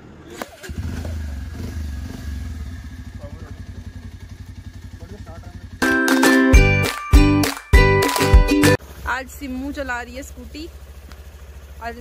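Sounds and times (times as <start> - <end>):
motorcycle engine idling: 0.0 - 5.8, 8.8 - 12.0.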